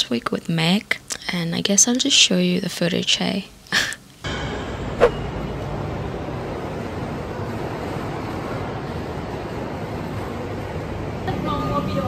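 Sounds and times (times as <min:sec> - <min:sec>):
station concourse rumble and hiss: 0:04.3 - 0:12.0.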